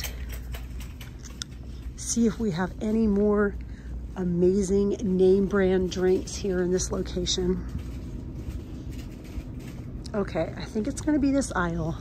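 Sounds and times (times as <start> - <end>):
low shop room hum: 0.0 - 12.0.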